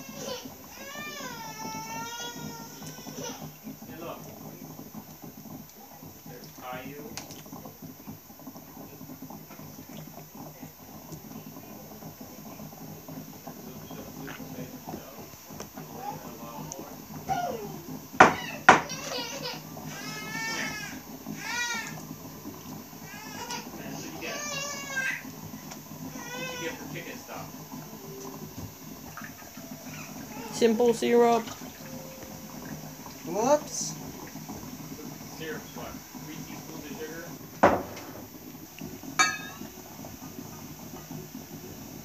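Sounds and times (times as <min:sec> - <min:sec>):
child squealing: 0:17.3 - 0:22.0.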